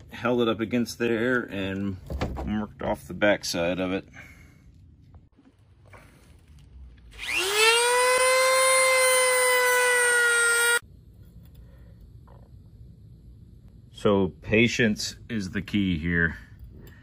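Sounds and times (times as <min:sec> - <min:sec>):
rotary tool whining: 0:07.1 - 0:10.8.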